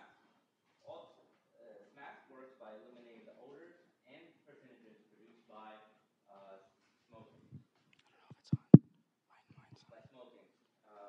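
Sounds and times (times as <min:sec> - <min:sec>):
faint low voices: 0:00.8 - 0:08.8, 0:09.4 - 0:11.0
microphone thumps: 0:08.3 - 0:08.8.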